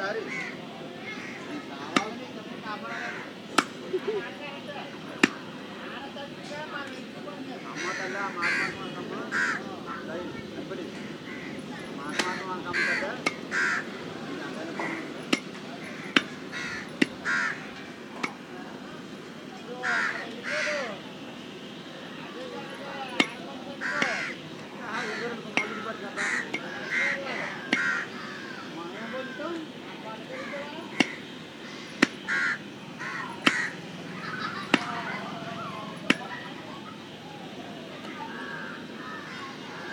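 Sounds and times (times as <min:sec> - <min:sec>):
crows cawing: 0:00.0 - 0:02.1, 0:02.7 - 0:03.6, 0:07.6 - 0:10.1, 0:10.9 - 0:18.0, 0:19.7 - 0:21.0, 0:23.7 - 0:36.3, 0:38.2 - 0:39.9
murmur of voices: 0:00.0 - 0:39.9.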